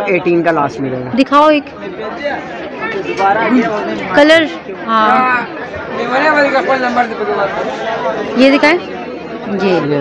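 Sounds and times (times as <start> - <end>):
people chattering: 0.0 - 10.0.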